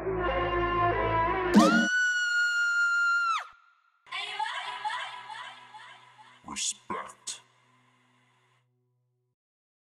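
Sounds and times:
high tone dropping in pitch: 1.6 - 2.0.

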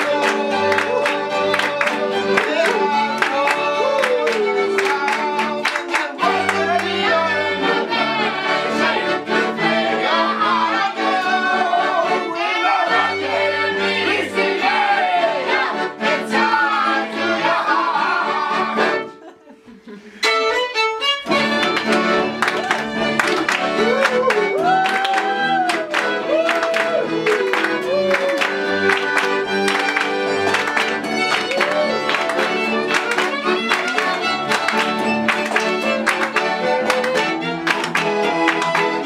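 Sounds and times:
audience clapping along: 0.0 - 12.2, 21.2 - 39.0
cello: 0.0 - 19.1, 20.2 - 39.0
voices singing: 0.0 - 19.1, 23.0 - 39.0
fiddle: 0.0 - 19.3, 20.2 - 39.0
accordion: 0.0 - 39.0.

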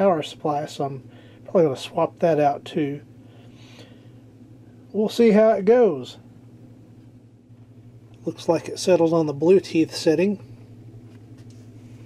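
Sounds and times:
faint low hum: 0.0 - 12.0
soft breath: 1.1 - 1.5, 3.2 - 4.3.

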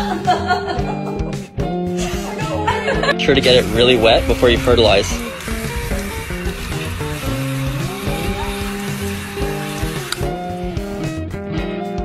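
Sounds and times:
background music: 0.0 - 12.0
hose nozzle spraying water: 3.3 - 11.1.

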